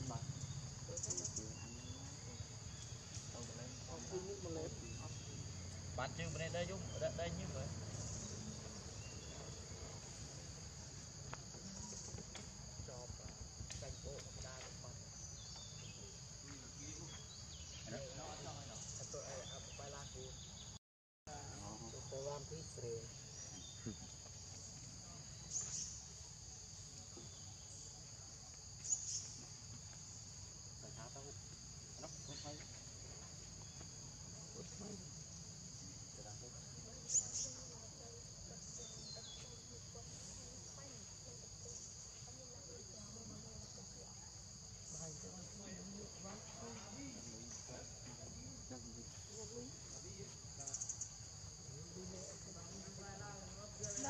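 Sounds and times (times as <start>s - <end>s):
insect chorus: 0.0s - 54.0s.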